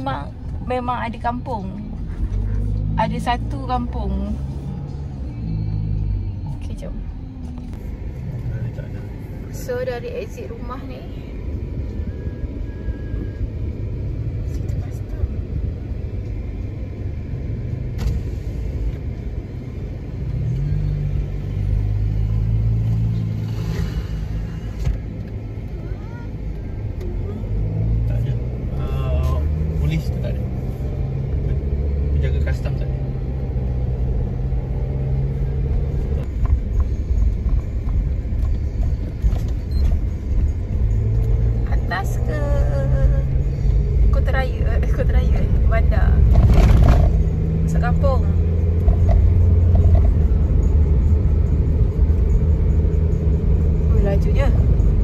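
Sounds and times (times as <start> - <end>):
car engine and road rumble: 0.0 - 55.0.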